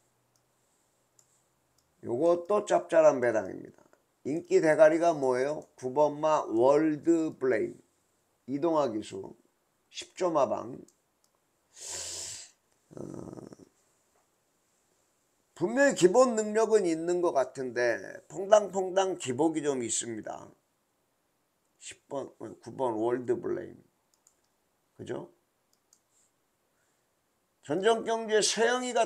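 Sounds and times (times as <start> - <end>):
faint room hum: 0.0 - 29.0
faint short clicks: 24.1 - 24.6.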